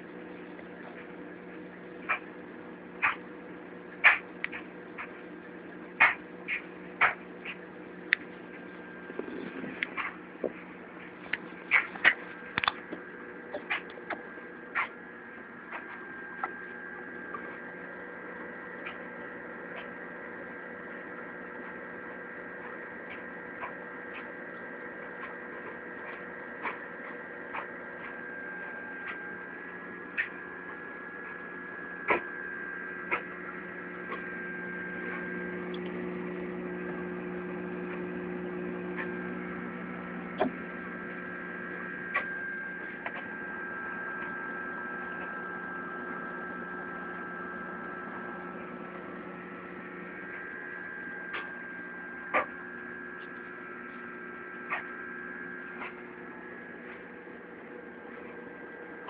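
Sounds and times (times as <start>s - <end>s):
aquarium pump and fans humming: 0.0s - 59.0s.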